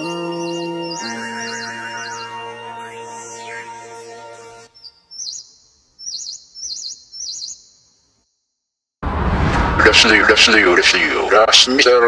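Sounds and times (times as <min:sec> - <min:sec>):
small bird chirping: 0:04.7 - 0:08.4.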